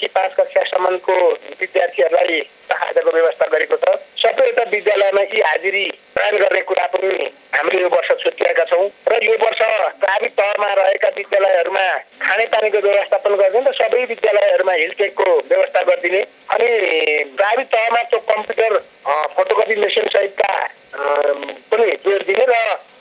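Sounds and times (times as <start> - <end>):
person talking on radio: 0.0 - 22.8.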